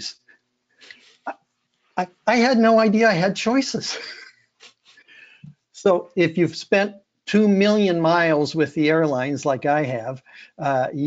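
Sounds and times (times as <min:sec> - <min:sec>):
soft breathy noise: 0:00.2 - 0:02.0, 0:04.6 - 0:05.7, 0:10.2 - 0:10.7.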